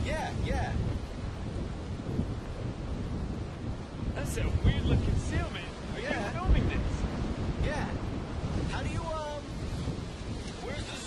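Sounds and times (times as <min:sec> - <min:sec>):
surf washing around rocks: 0:00.0 - 0:11.0
wind buffeting microphone: 0:00.0 - 0:11.0.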